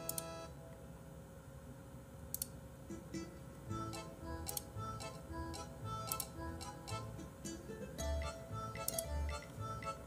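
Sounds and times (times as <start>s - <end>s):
short melody notes: 2.9s - 10.0s
ticking percussion clicks: 3.9s - 7.0s, 8.2s - 9.9s.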